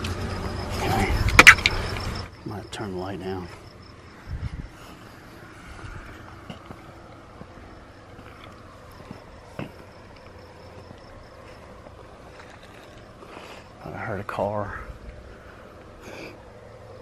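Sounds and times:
crickets chirping: 0.0 - 17.0
distant car passing: 0.0 - 17.0.

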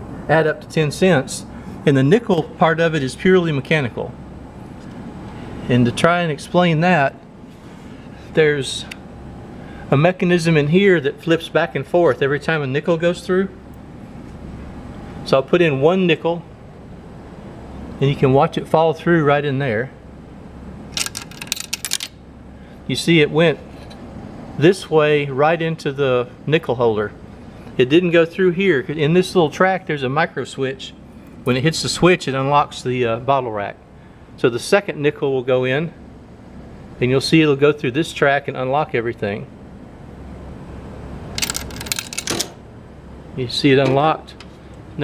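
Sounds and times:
steady low hum: 0.0 - 45.0
coin clicking through coin changer: 20.9 - 22.2, 41.3 - 42.6.

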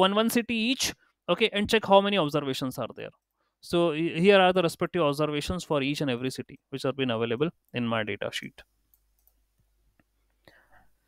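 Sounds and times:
faint clicks: 8.9 - 10.4.

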